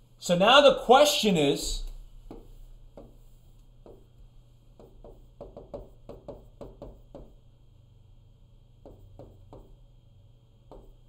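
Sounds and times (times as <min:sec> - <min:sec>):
low steady hum: 0:00.0 - 0:11.0
stylus knocking on touchscreen: 0:02.3 - 0:03.2, 0:04.8 - 0:07.4, 0:08.8 - 0:09.8, 0:10.7 - 0:11.0.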